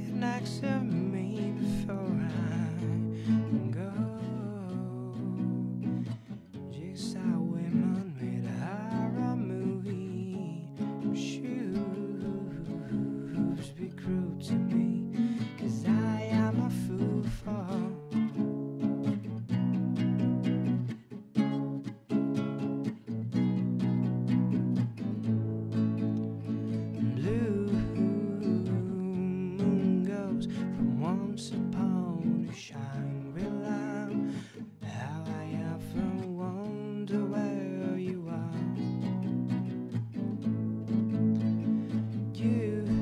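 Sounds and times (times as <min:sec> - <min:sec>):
acoustic guitar chords: 0:00.0 - 0:43.0.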